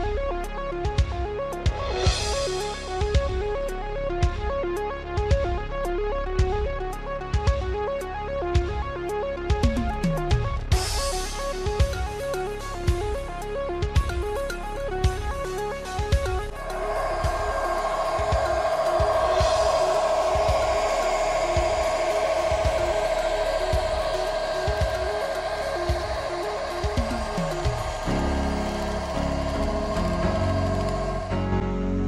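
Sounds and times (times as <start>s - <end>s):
background music with beat: 0.0s - 31.5s
model train engine whine: 16.5s - 31.6s.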